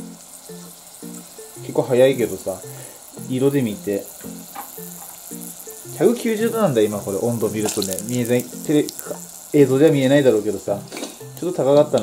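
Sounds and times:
background music: 0:00.0 - 0:12.0
deep-frying sizzle: 0:00.0 - 0:12.0.

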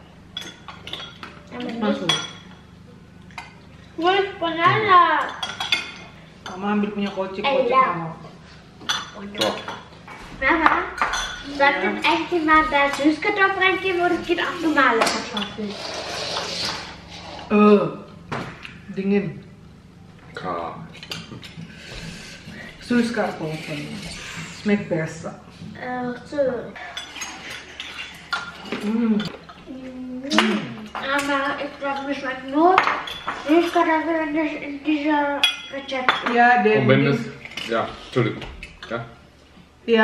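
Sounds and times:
spoons clinking on ceramic bowls: 0:05.2 - 0:07.2, 0:11.0 - 0:11.5, 0:32.8 - 0:33.8
spoons clinking against bowls: 0:05.2 - 0:07.3, 0:08.8 - 0:09.9, 0:10.6 - 0:11.5, 0:26.8 - 0:29.6, 0:30.3 - 0:33.9, 0:35.4 - 0:36.4.

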